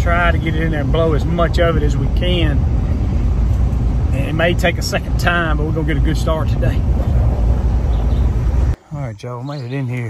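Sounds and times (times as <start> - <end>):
road and engine rumble inside vehicle: 0.0 - 8.8.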